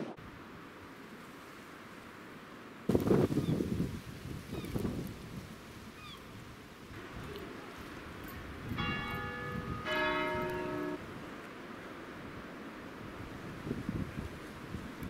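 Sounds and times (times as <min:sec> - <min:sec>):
wind buffeting microphone: 0:02.9 - 0:11.4, 0:12.3 - 0:15.0
church bell striking: 0:08.7 - 0:11.0.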